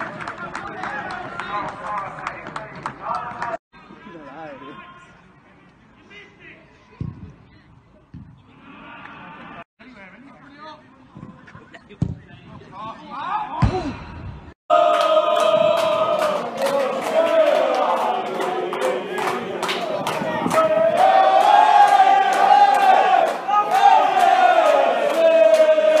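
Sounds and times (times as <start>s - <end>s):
thud: 13.6s - 14.5s
crowd chanting over drumbeat: 14.7s - 26.0s.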